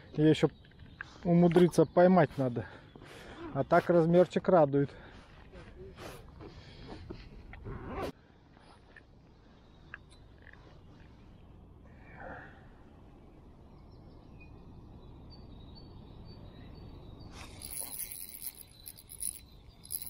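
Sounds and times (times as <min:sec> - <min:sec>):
rod and reel handling noises: 0:17.5 - 0:20.0.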